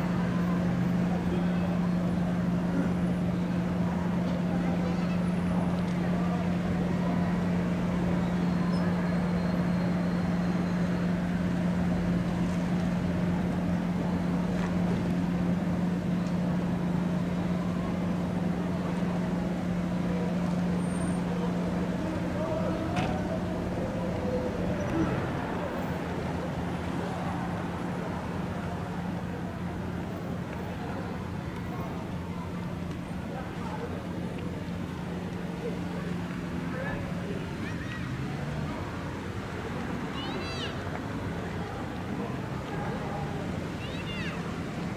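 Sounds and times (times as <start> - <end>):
faint distant voices: 0.0 - 44.9
vehicles idling and passing: 0.0 - 44.9.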